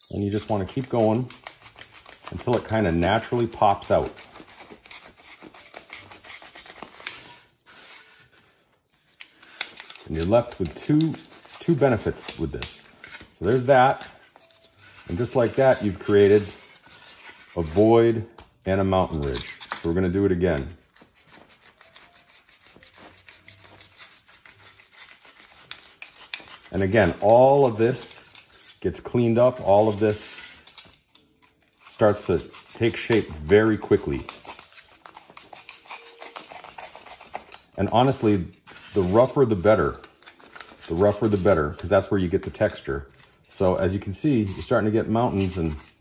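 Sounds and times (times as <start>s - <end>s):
knife scraping through foam board: 0.0s - 18.0s, 19.0s - 46.0s.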